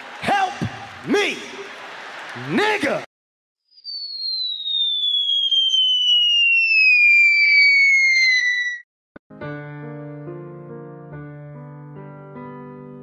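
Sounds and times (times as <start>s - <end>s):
descending whistle: 3.7s - 8.9s.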